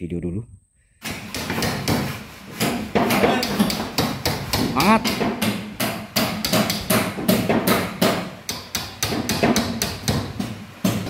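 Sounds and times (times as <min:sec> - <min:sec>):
hammer striking timber: 0:01.0 - 0:11.0.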